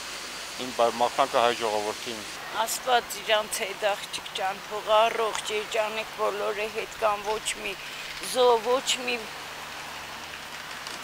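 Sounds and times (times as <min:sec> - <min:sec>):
steady background hiss: 0:00.0 - 0:11.0
woman speaking: 0:02.4 - 0:09.3.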